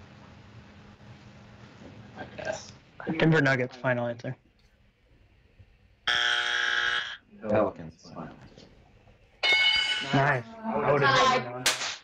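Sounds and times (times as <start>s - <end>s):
bell-like chime: 9.4s - 10.2s.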